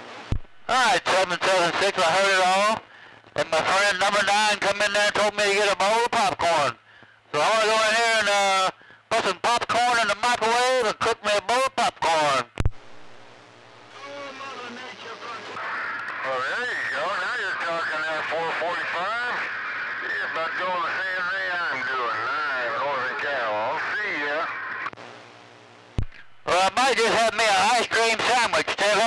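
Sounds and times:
radio static and hum: 0.0s - 29.0s
radio transmission click: 0.3s - 0.7s, 12.5s - 13.9s, 14.6s - 16.5s, 23.1s - 25.3s, 25.9s - 26.5s
voice over radio speaker: 0.7s - 12.6s, 13.9s - 24.8s, 26.4s - 29.0s.

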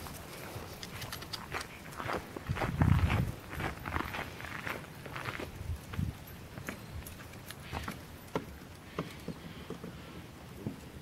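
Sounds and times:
footsteps on wooden deck: 2.0s - 11.0s.

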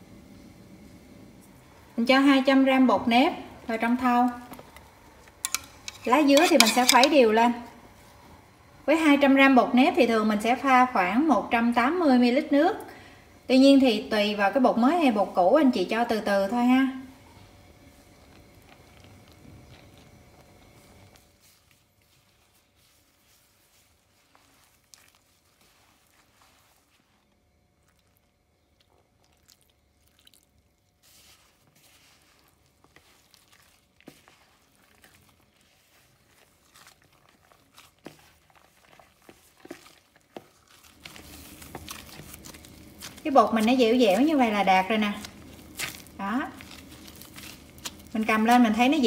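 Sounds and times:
hands kneading dough: 0.8s - 12.9s, 13.8s - 49.0s.

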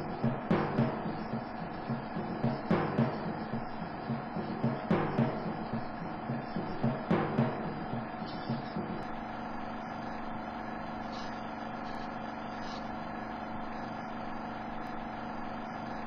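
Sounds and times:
faint drum hits: 0.0s - 9.3s
steady hum with hiss: 0.0s - 16.0s.

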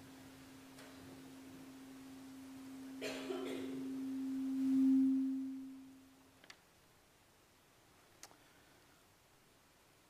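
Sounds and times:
sustained pure tone: 0.0s - 6.3s.

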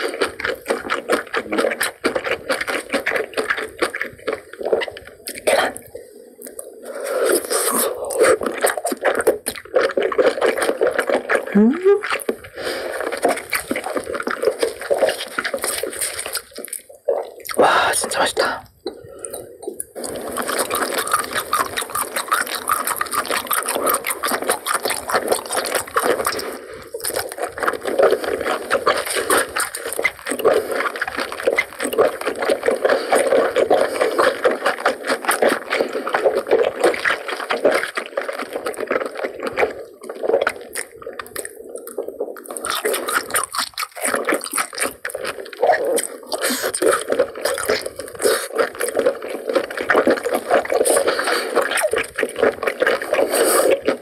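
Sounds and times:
wet chewing: 0.0s - 54.0s.

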